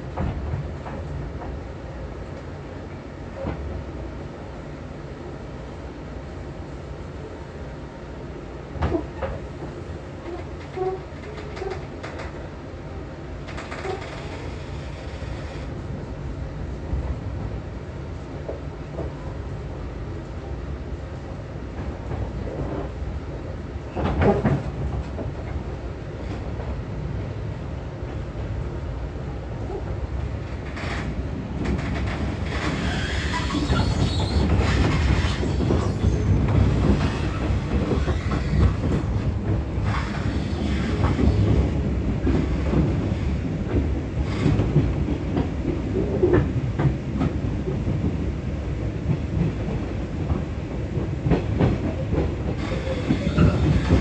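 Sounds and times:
train rumbling on rails: 0.0s - 54.0s
clatter over track: 8.8s - 12.4s, 13.4s - 15.8s, 24.0s - 25.6s, 30.4s - 48.3s, 49.0s - 54.0s.

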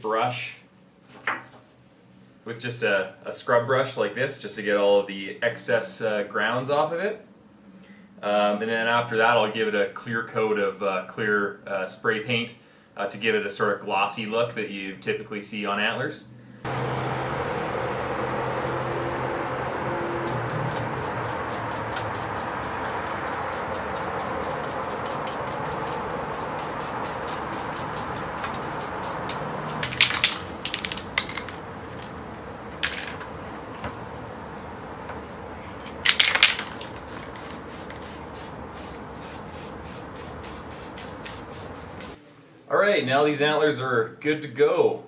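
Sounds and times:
stiff brush scrubbing antlers: 20.4s - 29.8s.

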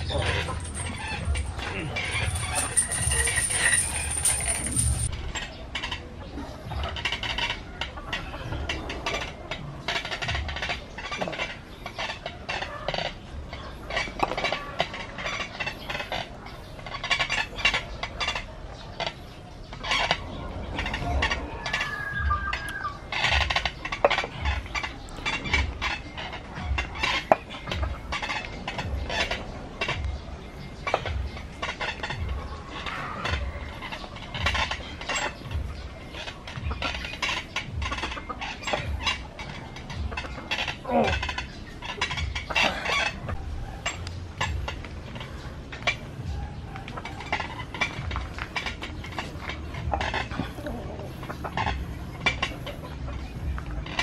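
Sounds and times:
dumbbell plates rattling on bars: 0.0s - 6.0s, 19.8s - 22.2s, 23.1s - 30.0s, 30.8s - 54.0s
bird calling: 9.8s - 54.0s.

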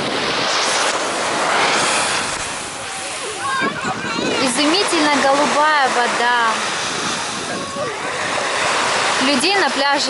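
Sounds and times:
waves washing on pebble beach: 0.0s - 10.0s.

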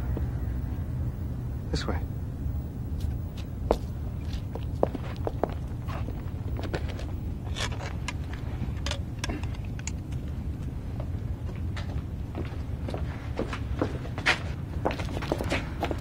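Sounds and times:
low background rumble: 0.0s - 16.0s
footsteps on pavement: 2.9s - 8.4s, 10.8s - 16.0s.

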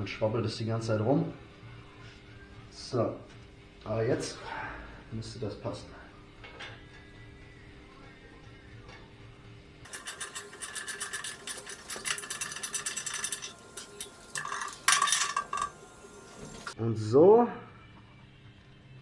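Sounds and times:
metal parts clinking and rattling: 9.9s - 15.7s.

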